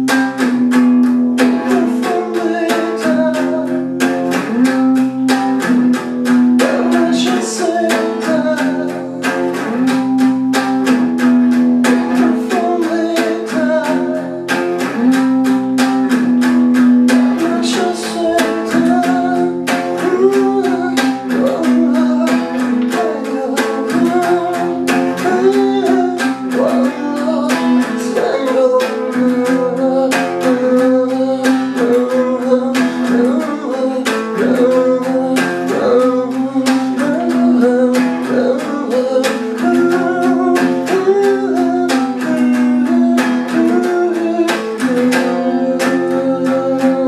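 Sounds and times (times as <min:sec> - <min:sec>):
guitar strumming: 0:00.0 - 0:47.0.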